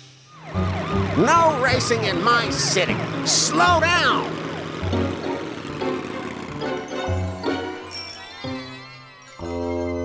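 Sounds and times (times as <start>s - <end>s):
background music: 0.0s - 10.0s
police car siren wailing: 0.2s - 7.8s
man shouting: 1.2s - 4.3s.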